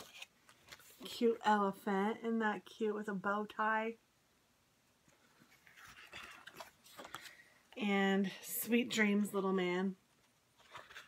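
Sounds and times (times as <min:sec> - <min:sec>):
card stock rustling: 0:00.0 - 0:01.2, 0:05.4 - 0:07.5, 0:10.5 - 0:11.0.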